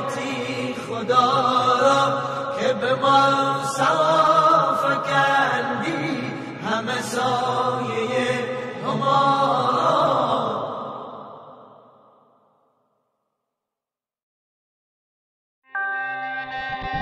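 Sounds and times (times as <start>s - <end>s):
man chanting a devotional song: 0.0s - 10.0s.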